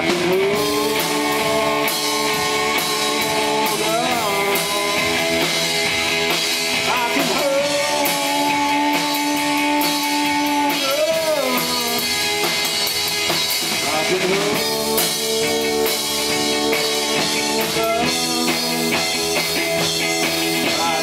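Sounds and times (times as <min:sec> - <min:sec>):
bass guitar: 0:00.0 - 0:21.0
drum kit: 0:00.0 - 0:21.0
electric guitar: 0:00.0 - 0:21.0
man singing long notes: 0:00.1 - 0:05.7, 0:06.8 - 0:12.3, 0:13.8 - 0:19.4.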